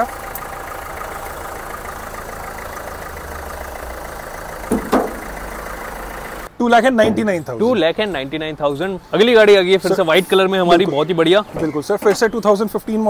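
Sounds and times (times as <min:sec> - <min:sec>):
diesel engine idling: 0:00.0 - 0:06.6.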